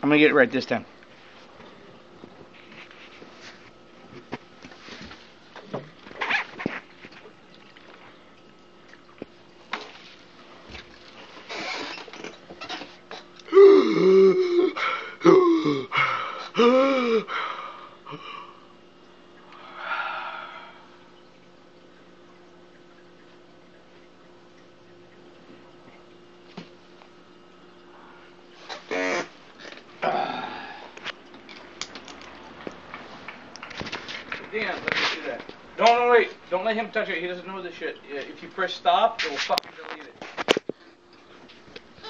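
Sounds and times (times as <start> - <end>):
man straining while chugging: 11.5 - 18.6
breathy exhale: 19.6 - 21.0, 30.0 - 31.0.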